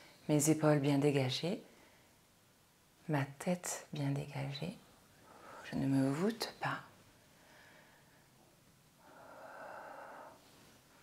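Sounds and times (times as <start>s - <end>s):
soft breath out: 7.3s - 8.4s, 9.0s - 11.0s.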